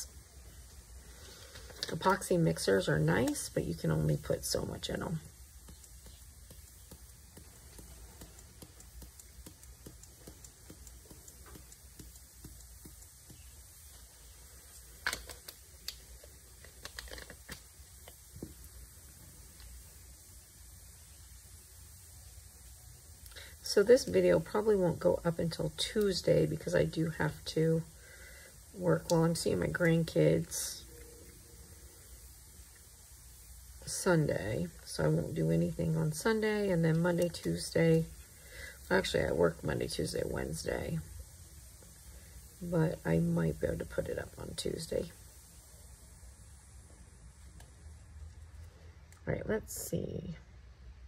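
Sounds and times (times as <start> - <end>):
faint low hum: 0.0 - 51.0
taps and knocks: 5.6 - 13.5
glitter pattering into a cup: 5.6 - 18.8.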